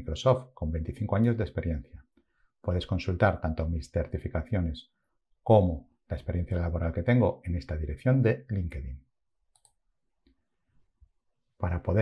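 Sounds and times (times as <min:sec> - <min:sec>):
computer mouse clicking: 0:09.5 - 0:09.8.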